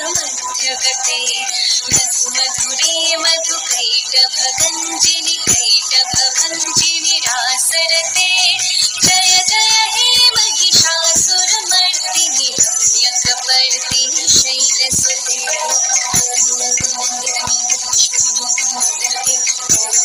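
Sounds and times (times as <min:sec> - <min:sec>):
song with singing voice: 0:00.0 - 0:20.0
steady beat: 0:00.0 - 0:20.0.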